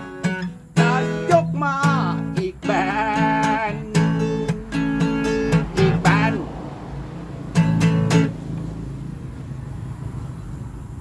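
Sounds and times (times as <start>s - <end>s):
acoustic guitar chord: 0.0s - 9.0s.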